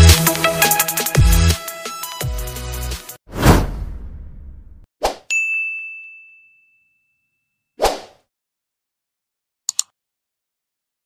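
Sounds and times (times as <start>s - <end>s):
loud swoosh hit: 3.3s - 4.9s
bright ding: 5.3s - 7.5s.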